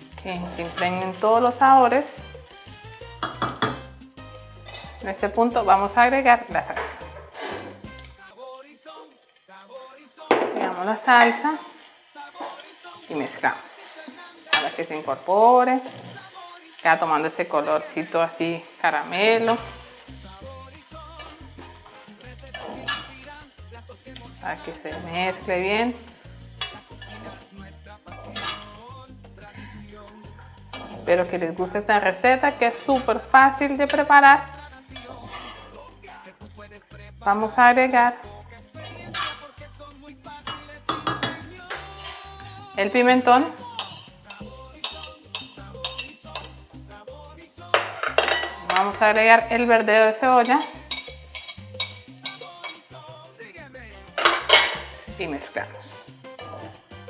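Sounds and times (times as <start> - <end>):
metal spoon scraping a metal pan: 0.0 - 3.9, 4.6 - 8.1, 12.4 - 16.5, 19.1 - 29.0, 29.9 - 31.4, 32.0 - 35.9, 38.5 - 39.6, 40.4 - 46.7, 47.7 - 49.4, 50.1 - 53.0, 54.1 - 57.0
background music with bass line: 0.0 - 8.3, 19.3 - 57.0
metal spoon clinking on plate: 28.2 - 28.7, 43.8 - 46.6, 47.7 - 49.0, 50.5 - 52.9, 54.2 - 55.0.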